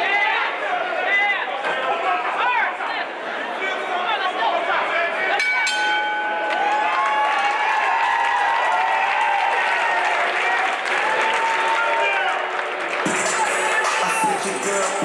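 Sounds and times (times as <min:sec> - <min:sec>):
crowd cheering and shouting: 0:00.0 - 0:15.0
boxing ring bell: 0:05.4 - 0:06.6.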